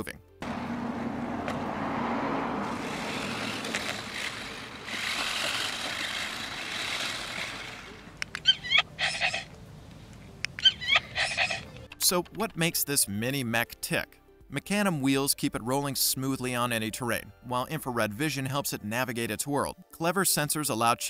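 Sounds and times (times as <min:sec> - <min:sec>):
electronic robot chirps and yelps: 0:08.4 - 0:09.5, 0:10.6 - 0:11.9.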